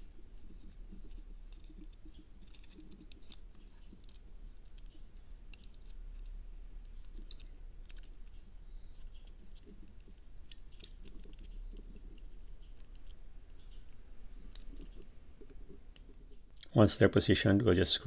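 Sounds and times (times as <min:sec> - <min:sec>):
small plastic parts clicking: 0:00.3 - 0:16.7.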